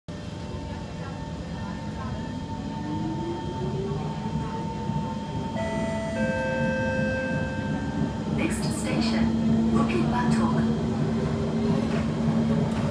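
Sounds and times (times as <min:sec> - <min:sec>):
metro train running rumble: 0:00.1 - 0:12.9
steady whining tones: 0:05.3 - 0:11.7.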